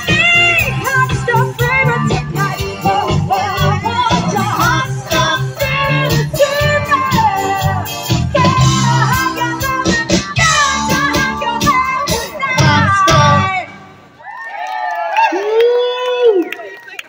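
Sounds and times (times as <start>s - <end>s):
live band playing: 0.0s - 14.2s
audience cheering and whooping: 14.2s - 17.0s.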